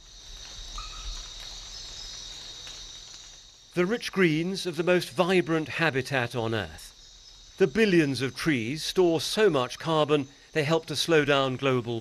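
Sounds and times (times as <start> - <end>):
high-pitched insect chorus: 0.0 - 12.0.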